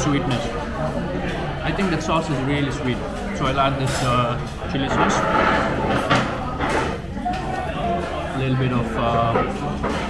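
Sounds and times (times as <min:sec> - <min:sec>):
metal spoon scraping a dish: 0:03.7 - 0:07.0.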